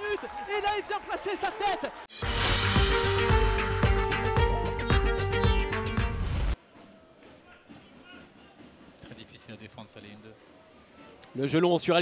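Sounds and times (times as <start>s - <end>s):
low crowd murmur: 10.3s - 11.4s.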